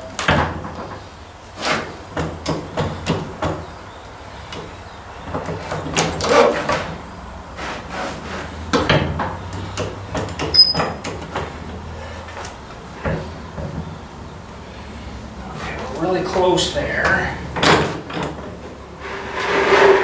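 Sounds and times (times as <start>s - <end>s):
heavy metal clunks and knocks: 17.5s - 18.6s
metal scraping: 19.0s - 20.0s.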